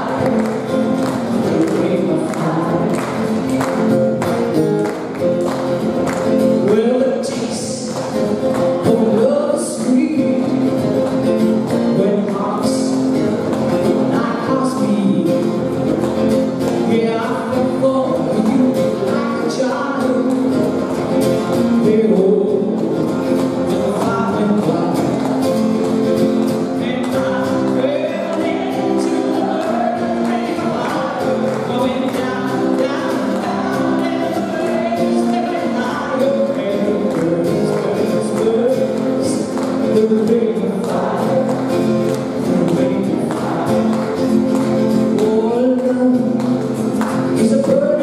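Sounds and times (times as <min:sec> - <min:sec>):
strummed acoustic guitar: 0:00.0 - 0:48.0.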